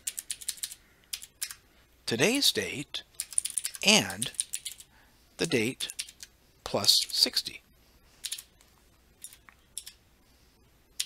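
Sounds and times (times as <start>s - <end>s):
typing on computer keyboard: 0.0s - 1.6s, 3.2s - 4.9s, 5.9s - 6.3s, 8.2s - 8.5s.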